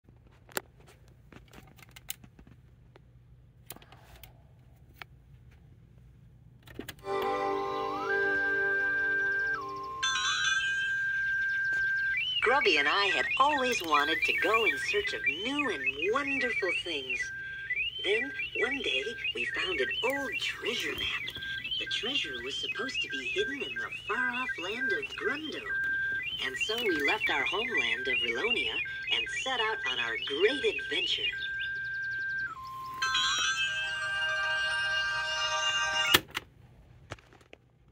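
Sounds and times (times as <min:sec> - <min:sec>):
music through small speaker: 0:07.0 - 0:10.1, 0:11.1 - 0:36.2
chime-like shimmer: 0:09.7 - 0:11.8, 0:33.0 - 0:36.1.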